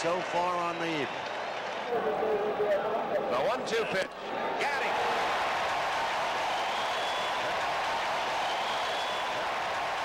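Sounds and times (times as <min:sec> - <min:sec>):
stadium crowd cheering and applauding: 0:00.0 - 0:02.4, 0:03.4 - 0:10.0.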